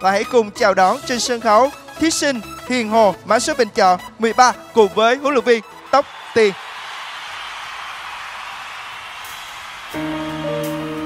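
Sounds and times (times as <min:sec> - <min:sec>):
crowd applauding: 0:05.6 - 0:11.0.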